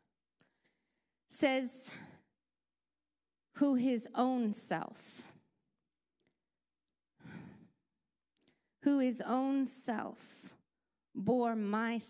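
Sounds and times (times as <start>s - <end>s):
woman's voice: 3.6s - 5.3s, 8.9s - 10.5s, 11.2s - 12.0s
woman breathing into microphone: 7.2s - 7.7s.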